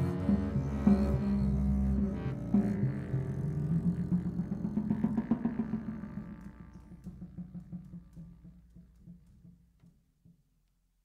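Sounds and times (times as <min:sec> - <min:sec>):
jazz double bass playing: 0:00.0 - 0:08.5.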